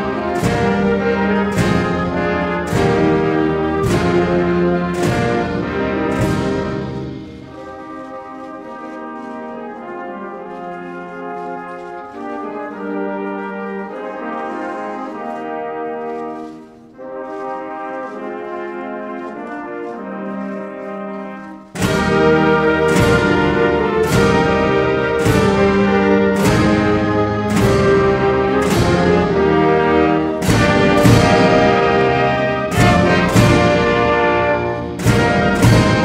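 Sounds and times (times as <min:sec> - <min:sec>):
brass band playing anthem: 0:00.0 - 0:36.0.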